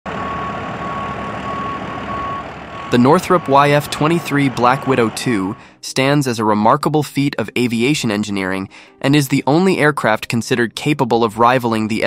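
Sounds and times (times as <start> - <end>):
tow tractor engine running: 0.1 - 5.7
high warning beep: 0.2 - 5.7.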